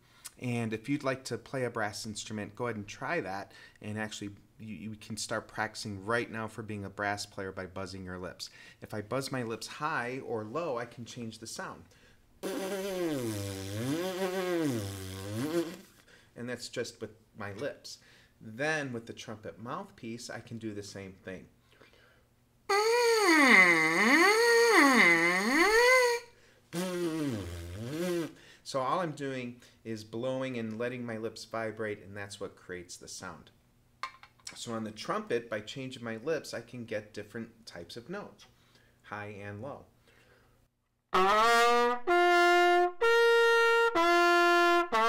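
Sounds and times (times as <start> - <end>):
trumpet mouthpiece buzzing: 12.4 - 15.9, 22.7 - 28.4, 41.2 - 45.0.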